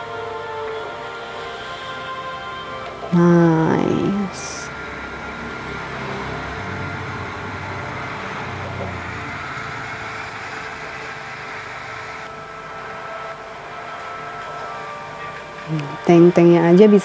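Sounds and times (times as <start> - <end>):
military vehicle engines running: 3.9 - 14.7.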